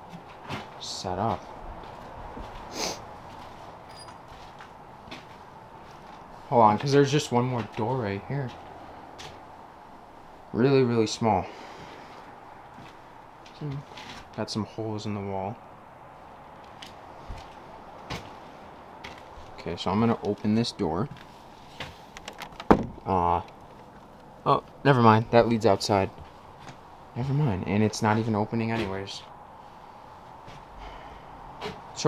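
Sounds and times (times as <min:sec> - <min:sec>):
man breathing close to microphone: 0:11.4 - 0:12.4, 0:29.6 - 0:31.9.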